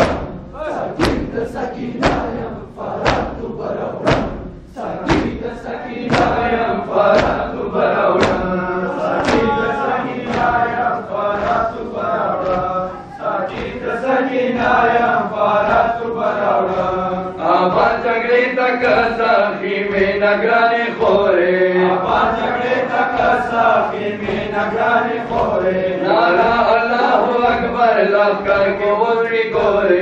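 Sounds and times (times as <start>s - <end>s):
men chanting together: 0.0s - 30.0s
rhythmic chest slapping: 0.0s - 30.0s.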